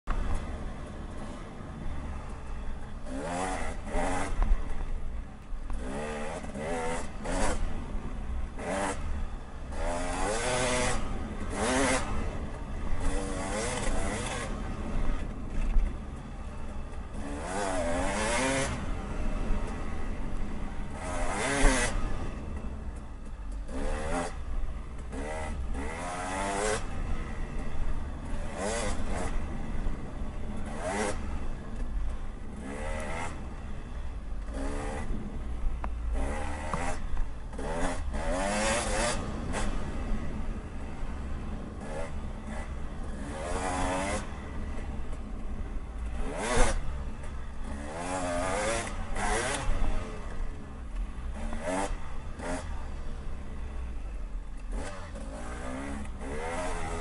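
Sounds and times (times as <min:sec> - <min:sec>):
dirt bike engine revving: 0:00.1 - 0:05.0, 0:05.7 - 0:22.8, 0:23.6 - 0:53.8, 0:54.6 - 0:57.0.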